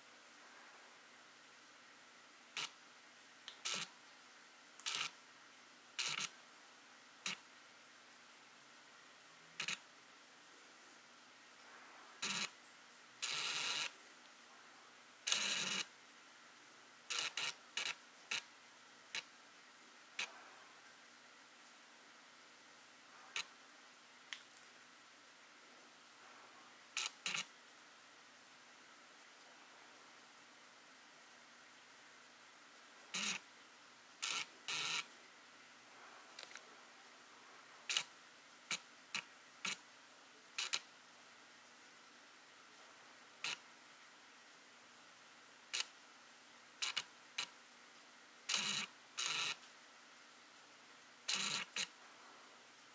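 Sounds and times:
faint steady hiss: 0:00.0 - 0:52.9
lens autofocus motor whirring: 0:06.0 - 0:06.3, 0:12.2 - 0:12.5, 0:13.2 - 0:13.9, 0:15.3 - 0:15.9, 0:17.1 - 0:18.4, 0:27.0 - 0:27.5, 0:34.2 - 0:35.0, 0:48.5 - 0:49.6, 0:51.3 - 0:51.9.

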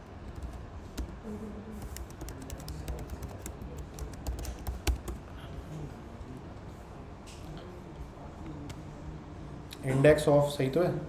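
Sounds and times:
typing on computer keyboard: 0:00.2 - 0:01.1, 0:01.8 - 0:05.2.

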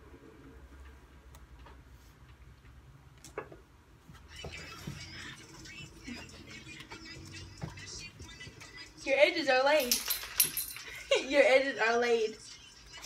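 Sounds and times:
faint music from earbuds: 0:04.0 - 0:13.0.

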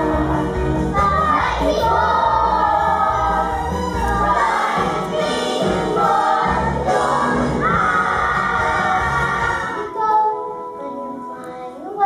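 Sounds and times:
instrumental accompaniment: 0:00.0 - 0:11.6
children singing in chorus: 0:01.0 - 0:10.0.

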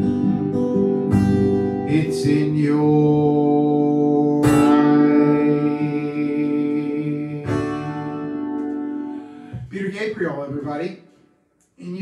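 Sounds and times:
acoustic guitar strumming: 0:00.0 - 0:10.6.

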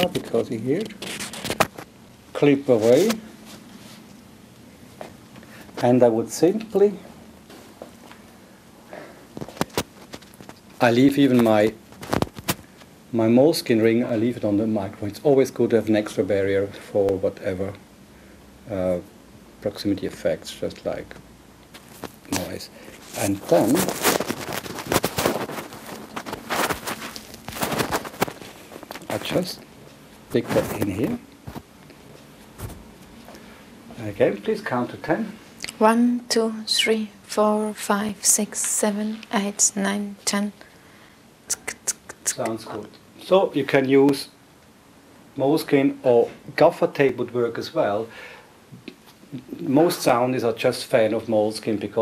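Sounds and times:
microphone handling rustle: 0:00.0 - 0:02.0, 0:02.6 - 0:04.1, 0:09.3 - 0:12.9, 0:21.1 - 0:33.4.

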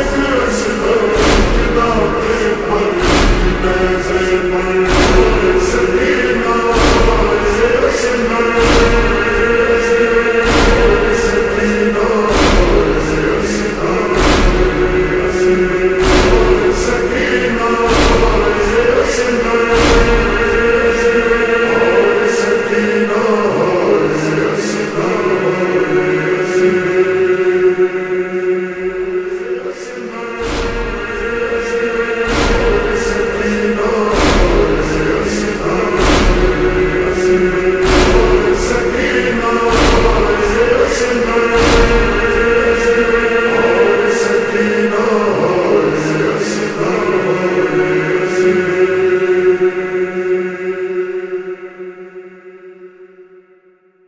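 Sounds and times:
male voices chanting lament: 0:00.0 - 0:52.8.

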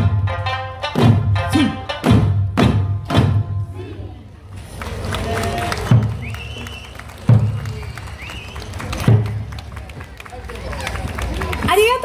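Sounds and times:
crowd chatter: 0:03.6 - 0:12.0.

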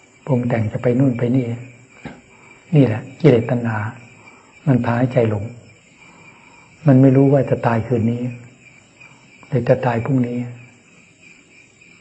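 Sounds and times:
insects chirping: 0:00.0 - 0:12.0
man speaking: 0:00.3 - 0:01.8, 0:02.7 - 0:05.7, 0:06.8 - 0:08.5, 0:09.5 - 0:10.7.

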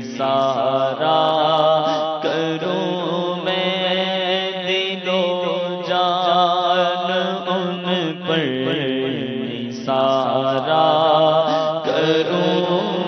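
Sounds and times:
man singing into microphone: 0:00.0 - 0:13.0.

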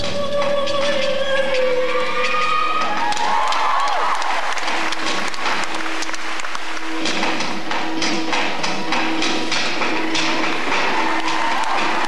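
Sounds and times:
recorded performance music: 0:00.0 - 0:12.0
audience applause: 0:03.0 - 0:07.4, 0:10.4 - 0:12.0.

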